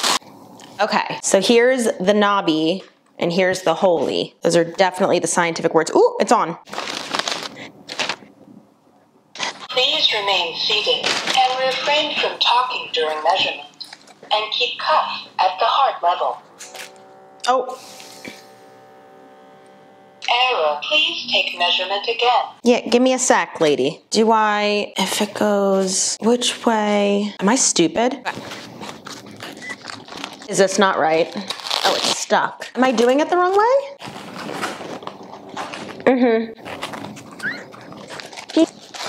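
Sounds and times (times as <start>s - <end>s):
small air pump humming: 11.5s - 22.6s.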